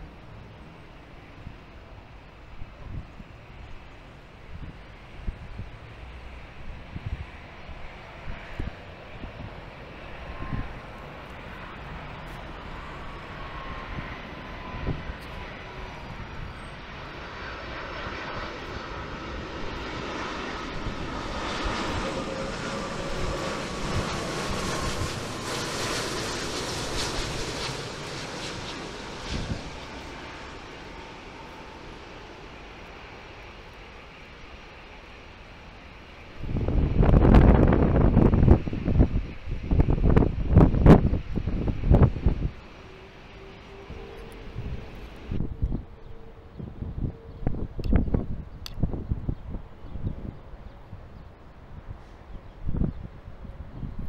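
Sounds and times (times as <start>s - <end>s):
jet engine noise: 0.0s - 54.0s
wind buffeting microphone: 4.4s - 33.0s, 36.2s - 54.0s.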